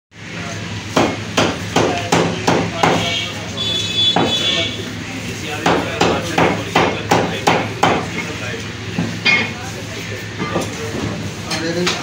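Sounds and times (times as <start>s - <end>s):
cleaver chopping meat on wooden block: 0.9s - 3.1s, 4.1s - 4.4s, 5.6s - 8.1s.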